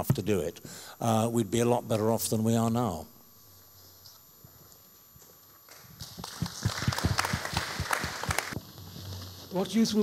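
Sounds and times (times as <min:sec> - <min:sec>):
audience applause: 0:06.0 - 0:08.6.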